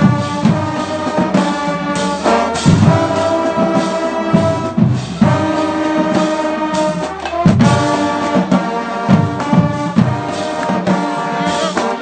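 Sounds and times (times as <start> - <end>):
marching band playing: 0.0 - 12.0
bass drum accent: 2.1 - 6.3.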